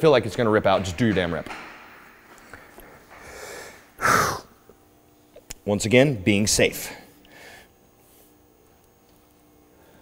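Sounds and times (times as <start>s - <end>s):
man breathing out through nose: 3.1s - 4.5s.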